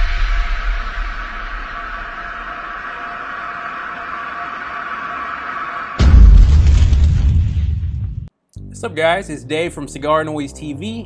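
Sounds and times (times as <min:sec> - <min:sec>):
low rumble: 0:00.0 - 0:08.9.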